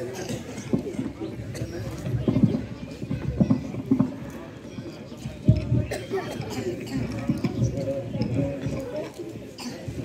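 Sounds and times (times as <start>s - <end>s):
faint voices: 0.0s - 10.0s.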